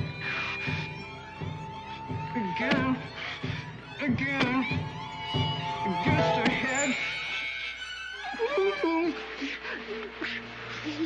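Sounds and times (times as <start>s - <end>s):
man wailing and sobbing: 7.7s - 10.2s.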